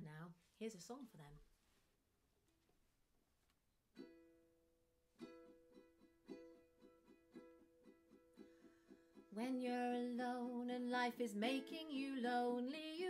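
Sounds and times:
ukulele strumming: 3.9 - 13.0.

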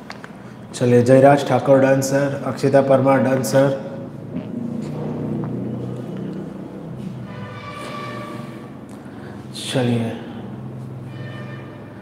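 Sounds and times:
low engine drone: 3.8 - 12.0.

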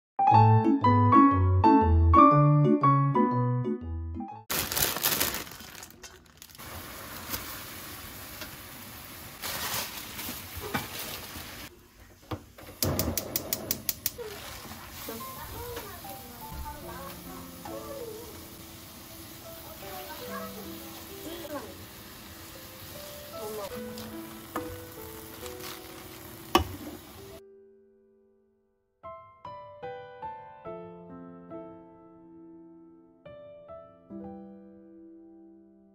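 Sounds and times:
soft background music: 15.0 - 27.7.

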